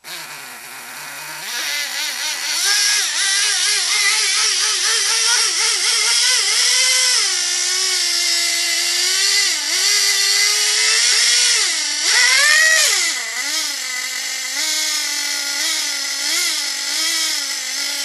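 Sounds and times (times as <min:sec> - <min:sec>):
nitro engine revving: 0:00.0 - 0:18.0.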